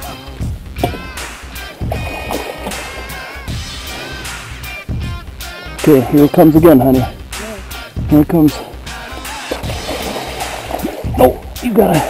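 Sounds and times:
background music with bass: 0.0s - 12.0s
fish thrashing and splashing: 0.8s - 4.4s, 9.1s - 12.0s.

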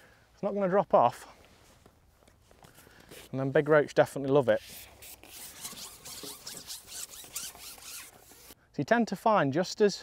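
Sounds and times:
fishing pole scraping through hands: 4.4s - 8.6s.

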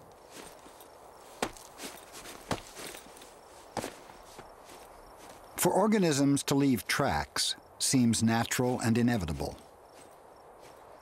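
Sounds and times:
boot footsteps on rock: 0.0s - 5.5s.

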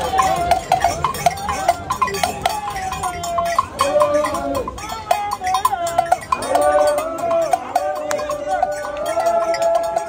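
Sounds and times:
crowd chanting: 0.0s - 10.0s
handheld metal bell struck: 0.0s - 10.0s.

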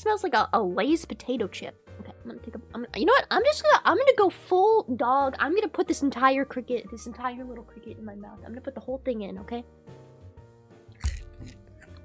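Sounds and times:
quiet background music: 0.0s - 12.0s
dried insect crunching: 11.0s - 12.0s.

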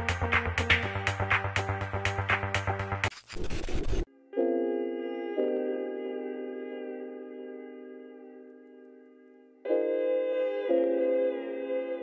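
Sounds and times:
electronic dance music: 0.0s - 4.1s
static-like glitch noise: 3.1s - 4.1s.

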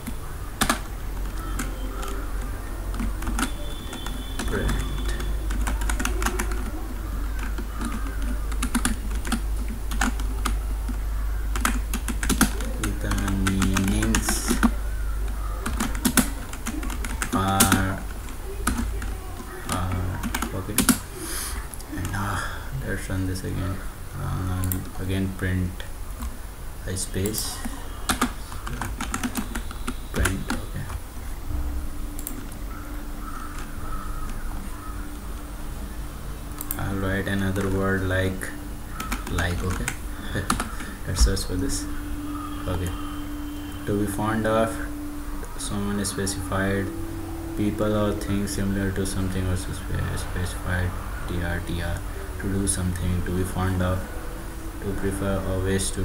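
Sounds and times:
keyboard typing clicks: 0.0s - 21.0s, 27.3s - 31.0s, 33.4s - 34.4s, 36.5s - 37.8s, 38.6s - 43.0s
bird calling: 0.0s - 22.8s, 27.2s - 56.0s
steady low hum: 0.0s - 56.0s
faint clicks: 36.5s - 36.8s.

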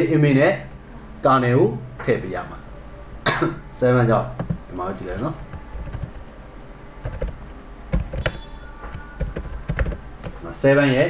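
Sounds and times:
computer keyboard typing: 4.4s - 6.3s, 7.0s - 10.4s.

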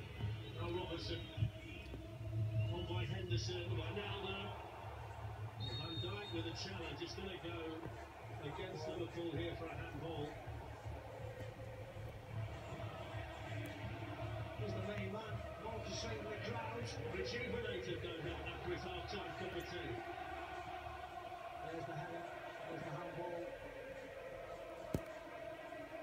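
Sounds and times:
stadium crowd noise: 0.0s - 26.0s
commentator speaking: 2.7s - 4.6s, 5.6s - 10.4s, 12.9s - 20.1s, 21.6s - 23.6s.

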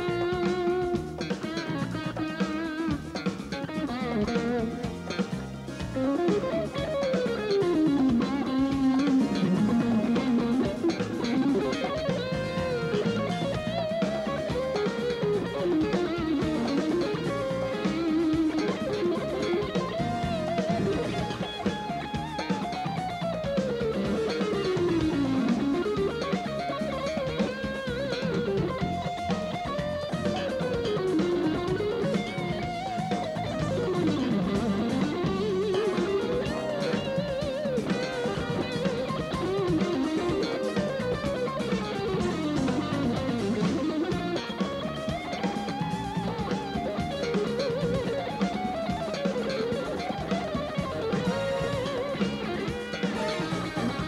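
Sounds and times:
electric guitar solo: 0.0s - 54.0s
rock band drums and bass: 0.0s - 54.0s.

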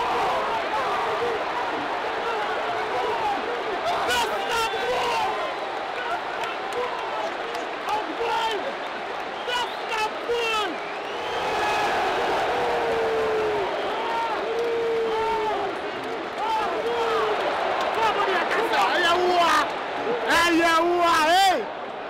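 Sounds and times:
crowd roar: 0.0s - 22.0s
crowd shouting and chanting: 0.0s - 22.0s
sharp claps: 5.6s - 9.7s, 13.9s - 18.3s.

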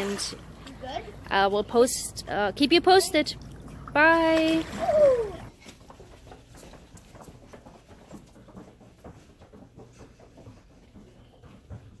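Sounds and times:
low steady hum: 0.0s - 8.8s
children running barefoot on carpet: 5.5s - 12.0s.

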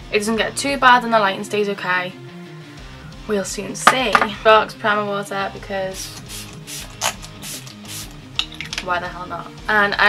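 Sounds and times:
low background music: 0.0s - 10.0s
spray bottle spritzes: 6.0s - 8.2s.

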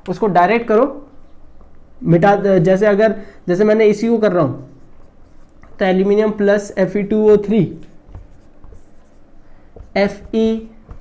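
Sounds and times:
marker scratching on whiteboard: 4.6s - 6.7s, 7.4s - 11.0s.

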